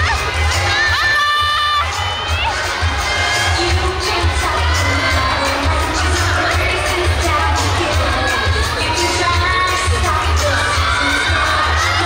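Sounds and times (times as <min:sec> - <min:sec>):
dance music with bass beat: 0:00.0 - 0:12.0
high-pitched voices cheering: 0:00.0 - 0:12.0.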